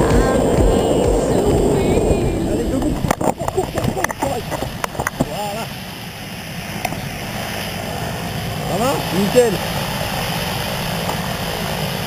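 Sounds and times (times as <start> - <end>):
propeller aircraft engine: 0.0 - 12.0.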